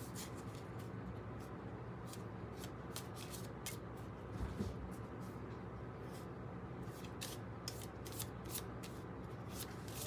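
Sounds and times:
cards being shuffled: 2.1 - 3.9.

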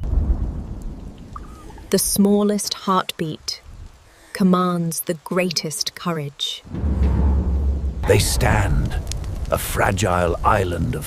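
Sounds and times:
thunder rumble: 0.0 - 2.2, 6.7 - 11.0
rain falling: 0.0 - 11.0.

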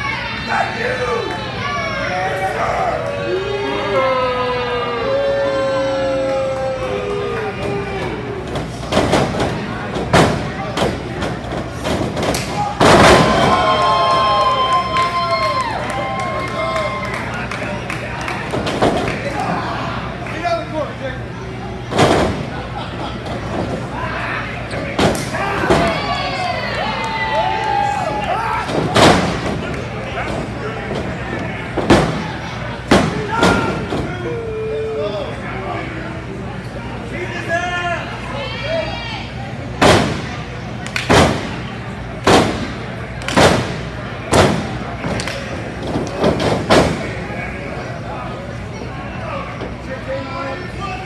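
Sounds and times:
people shouting: 0.0 - 8.4, 12.4 - 17.2, 23.9 - 29.4, 32.9 - 35.3
wrestling ring thuds and slaps: 8.6 - 13.6, 28.6 - 29.8, 31.8 - 34.1, 39.8 - 40.3, 41.0 - 41.6, 42.2 - 47.2
body slamming on ring mat: 28.7 - 29.6.

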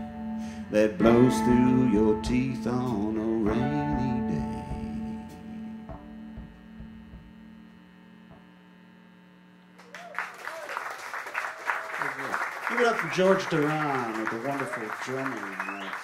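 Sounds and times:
band chord ringing out: 0.0 - 8.2
audience applauding: 9.8 - 16.0.

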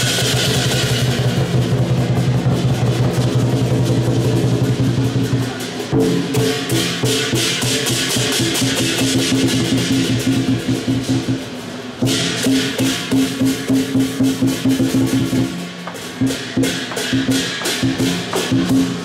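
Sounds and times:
cymbals clashing: 0.0 - 19.0
large drum beaten rapidly: 0.0 - 19.0.

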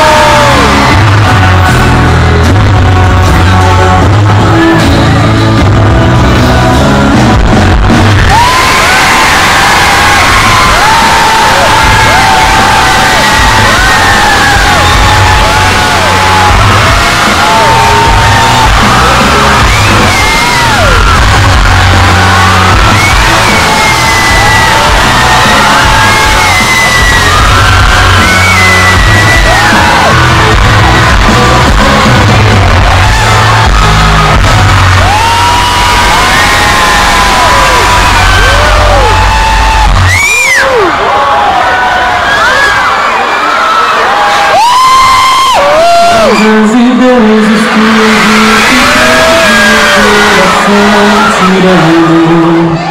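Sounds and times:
crowd screaming and cheering: 0.0 - 52.9
loud live concert music: 0.0 - 52.9.

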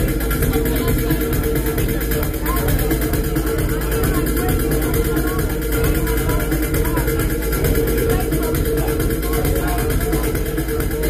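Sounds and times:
electronic music with pulsing bass: 0.0 - 11.0.

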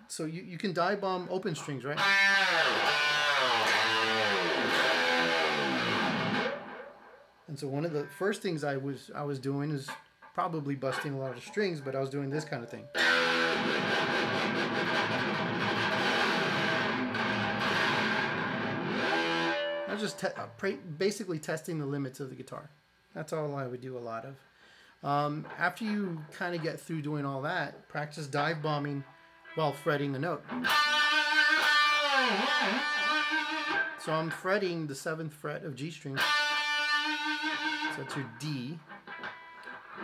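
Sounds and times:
electric guitar note with tremolo bend: 2.0 - 7.1, 12.9 - 20.0, 30.4 - 34.0.

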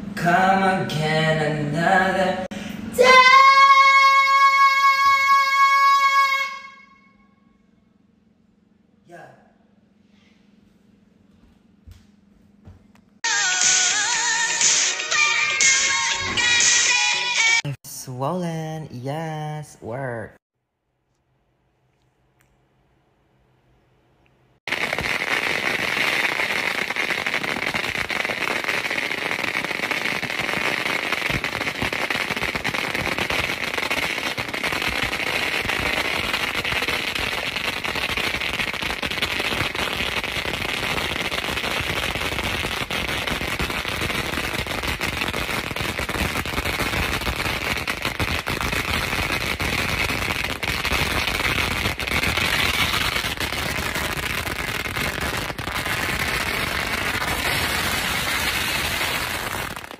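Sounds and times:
fireworks crackling and popping: 24.6 - 59.9.

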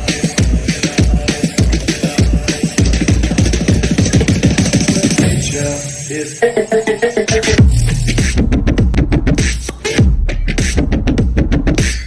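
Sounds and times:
electronic bass music: 0.0 - 12.0.

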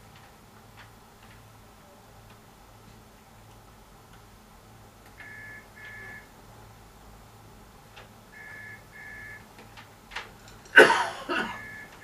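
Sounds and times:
telephone ringing: 11.6 - 12.0.

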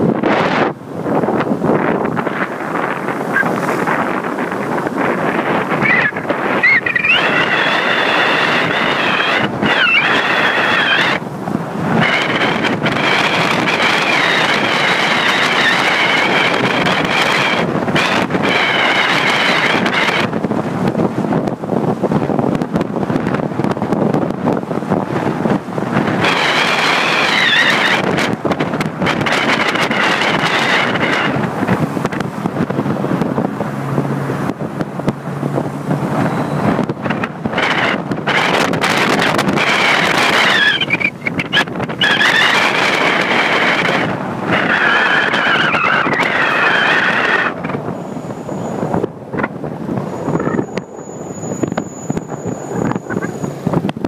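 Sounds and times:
car road noise: 0.0 - 54.0
wind buffeting microphone: 0.0 - 54.0
wavering high whistle: 5.8 - 11.2, 36.2 - 36.7.

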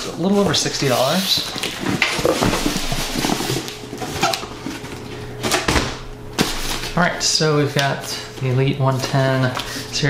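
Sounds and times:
cardboard scraping and rustling: 0.0 - 5.2, 6.4 - 7.1.

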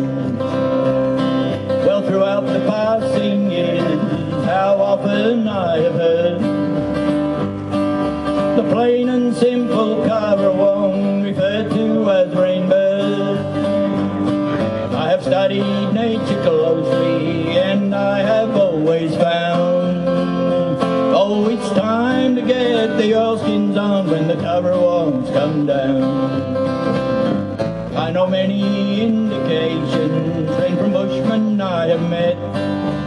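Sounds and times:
country music on acoustic guitars: 0.0 - 33.0.

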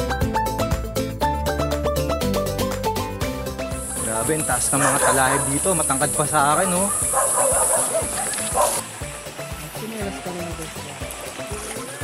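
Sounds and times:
dog barking: 4.6 - 5.8, 6.6 - 8.8.

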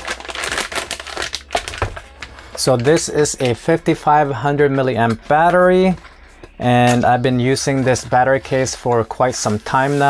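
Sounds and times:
plastic mailer bag crinkling: 0.0 - 3.8.

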